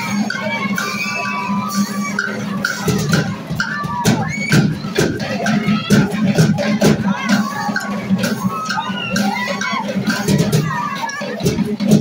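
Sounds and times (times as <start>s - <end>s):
drumline playing a steady beat: 0.0s - 12.0s.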